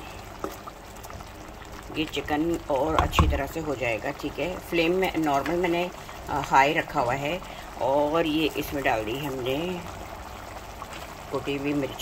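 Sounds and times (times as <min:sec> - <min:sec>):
sauce bubbling in a pan: 0:00.0 - 0:12.0
wooden spatula knock: 0:02.9 - 0:03.5.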